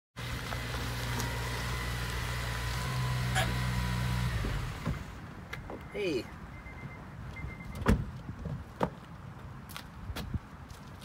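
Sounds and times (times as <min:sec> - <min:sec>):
tyres on gravel: 0:00.2 - 0:06.2.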